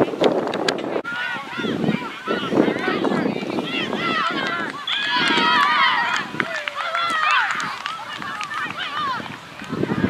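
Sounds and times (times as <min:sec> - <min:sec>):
high-pitched voices shouting: 0:01.0 - 0:09.2.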